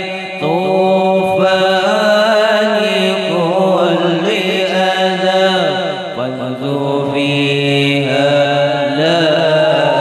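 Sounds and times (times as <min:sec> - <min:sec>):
men chanting devotional melody: 0:00.0 - 0:10.0.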